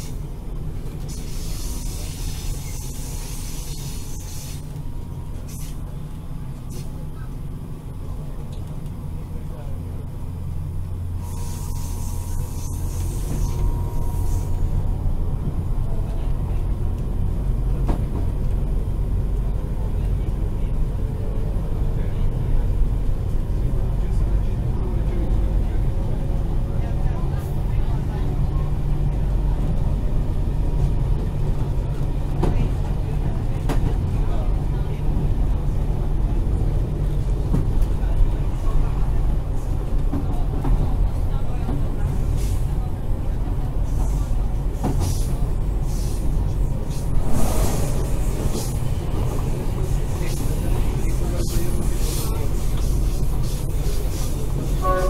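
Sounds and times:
train rumble from inside carriage: 0.0 - 55.0.

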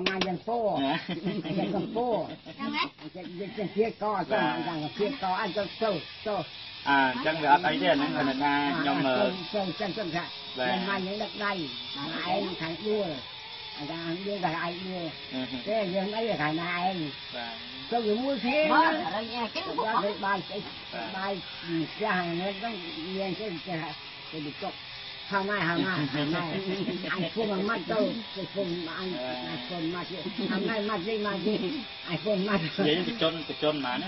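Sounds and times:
person talking: 0.0 - 13.2, 13.8 - 34.0.

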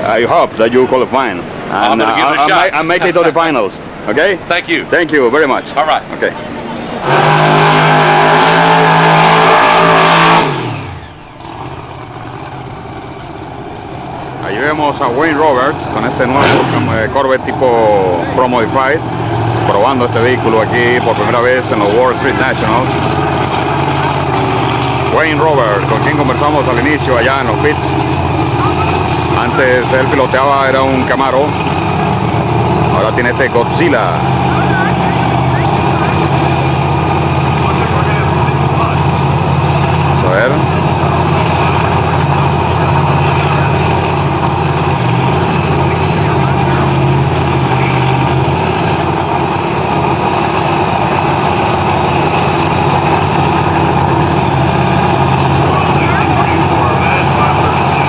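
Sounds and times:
car engine idling: 6.2 - 58.0.

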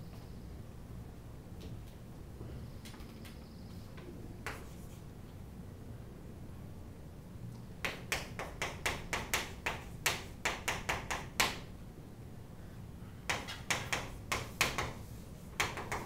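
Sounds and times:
chalk writing on a chalkboard: 4.4 - 5.1, 13.3 - 16.0.

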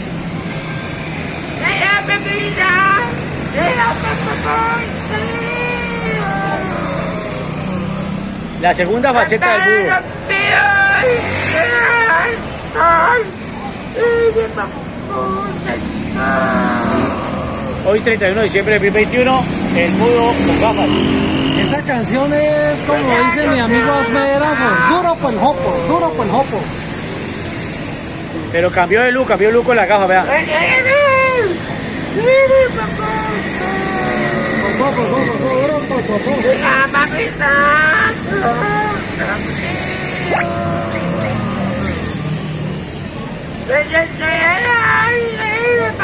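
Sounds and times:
street traffic: 0.0 - 46.0
man's long wordless call: 1.6 - 7.7, 9.3 - 17.9, 22.4 - 26.7, 30.4 - 41.9.

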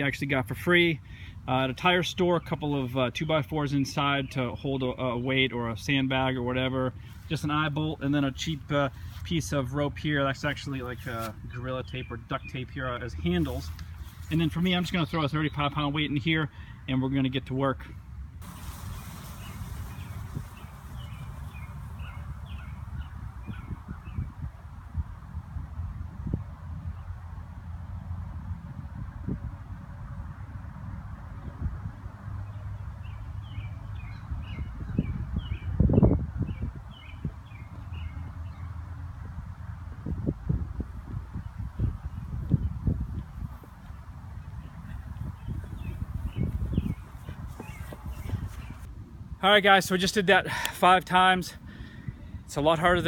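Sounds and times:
bird calling: 18.4 - 24.2
wind rumbling on microphone: 18.4 - 50.0.

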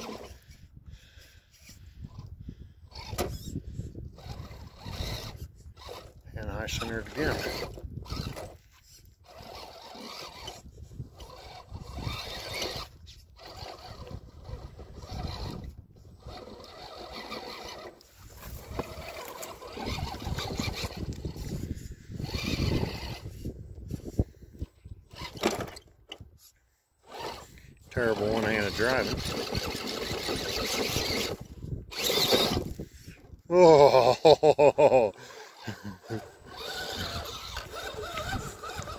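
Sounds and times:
electric motor and drivetrain whirring: 0.0 - 38.9
tyres on loose stone: 28.4 - 32.8.

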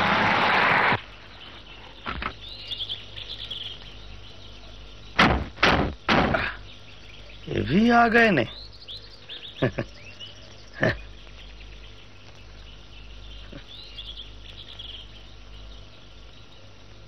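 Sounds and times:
steady low hum: 0.0 - 17.0
animal chirps and trills: 6.4 - 16.0.

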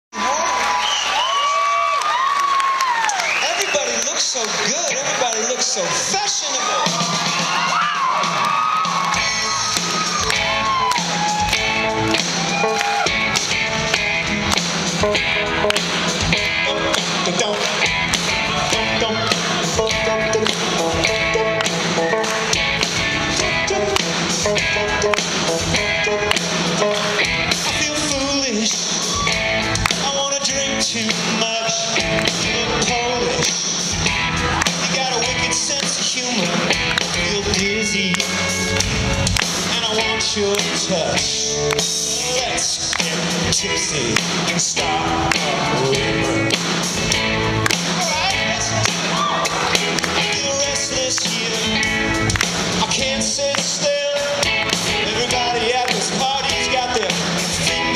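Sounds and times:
live rock band playing: 3.7 - 57.9
drum kit steady beat: 6.0 - 57.9.

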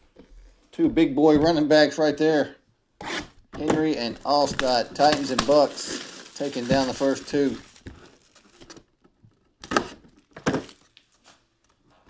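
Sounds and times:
cardboard box rustling: 3.8 - 8.8.

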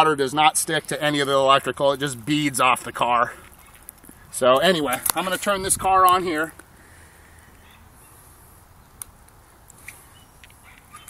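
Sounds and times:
faint outdoor background rumble: 0.0 - 11.0.

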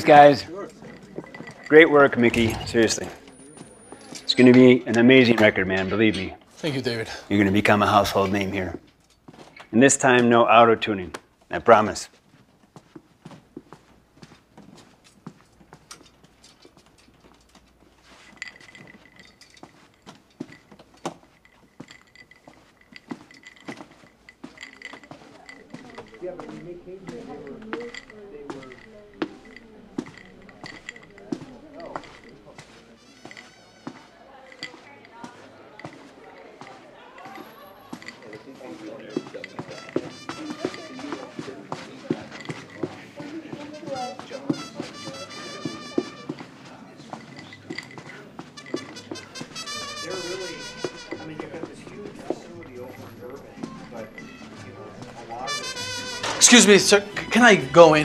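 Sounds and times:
mariachi music with violins and horns: 0.0 - 4.6, 25.9 - 34.8, 37.0 - 58.0
footsteps along a hallway: 0.0 - 58.0
muffled voices: 24.6 - 58.0.

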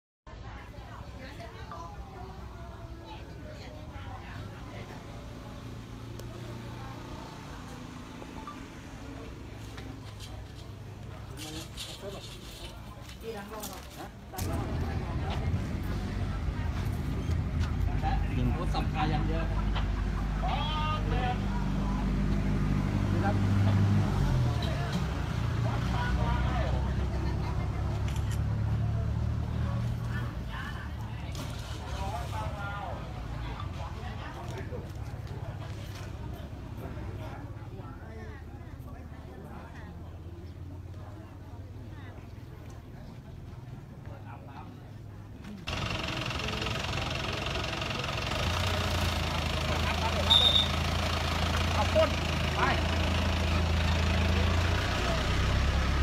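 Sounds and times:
people talking: 0.3 - 56.0
vehicle engine idling: 14.2 - 39.4, 45.0 - 56.0
engine idling: 45.7 - 56.0.

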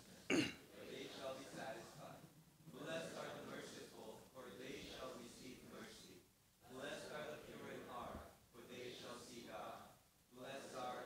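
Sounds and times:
man clearing his throat: 0.3 - 0.6.

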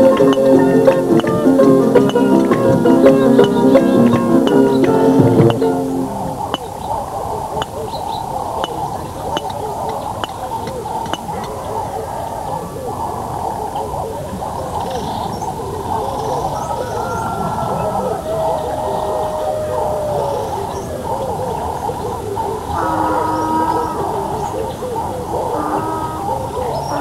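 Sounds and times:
muffled voices talking and calling: 0.0 - 27.0.

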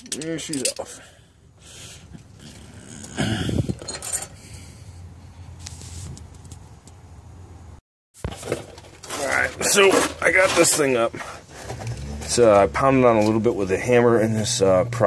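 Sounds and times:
tools clinking and knocking: 0.0 - 0.9, 3.7 - 4.4.

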